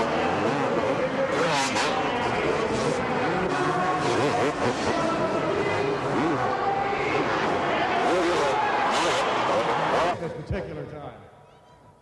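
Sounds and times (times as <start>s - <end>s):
motorcycles revving: 0.0s - 10.2s.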